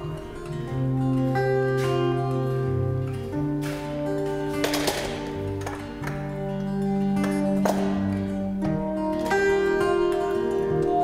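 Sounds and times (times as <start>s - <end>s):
acoustic guitar duet: 0.0s - 11.0s
sharp guitar strums: 0.0s - 11.0s.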